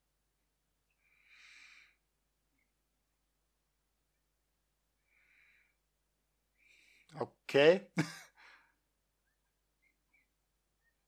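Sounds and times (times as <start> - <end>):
soft breath out: 1.0 - 2.0, 5.0 - 5.9
man speaking: 7.1 - 8.2.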